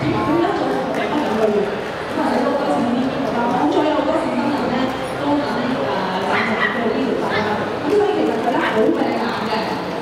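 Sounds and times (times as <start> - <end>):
crowd chatter: 0.0 - 10.0
small dog yipping: 6.3 - 7.6.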